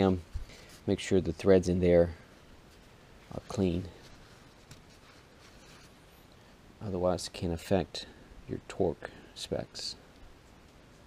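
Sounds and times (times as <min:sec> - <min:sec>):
cloth rubbing between hands: 0:02.6 - 0:06.2.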